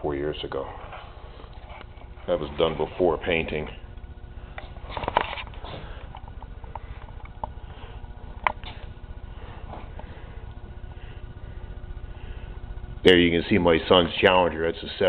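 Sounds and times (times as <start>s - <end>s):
faint hum: 0.0s - 15.0s.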